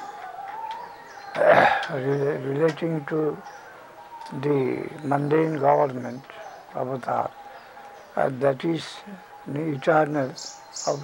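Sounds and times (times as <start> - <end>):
man coughing: 1.4 - 1.9.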